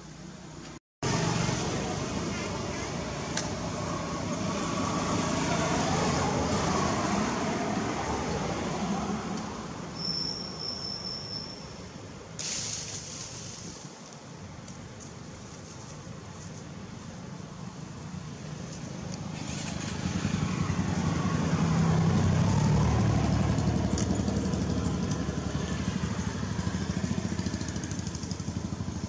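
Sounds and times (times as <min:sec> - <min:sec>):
steady hiss-like hum: 0:10.5 - 0:19.3.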